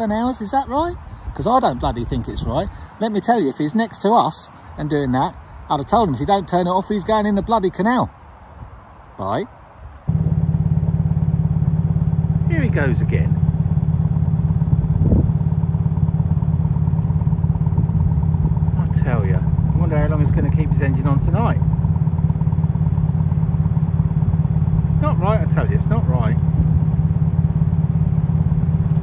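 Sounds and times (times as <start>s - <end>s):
diesel engine chugging: 10.1s - 29.0s.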